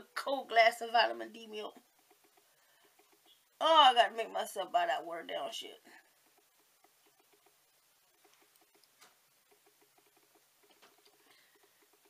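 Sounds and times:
faint rapid soft clicking: 0.0s - 4.7s, 5.8s - 12.0s.

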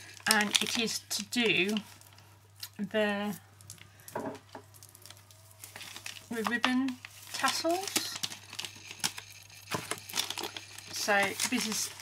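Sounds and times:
plastic crinkling: 0.0s - 12.0s.

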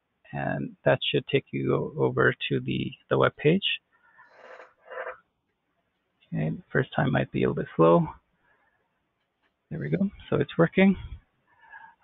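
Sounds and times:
man breathing softly: 11.0s - 12.0s.

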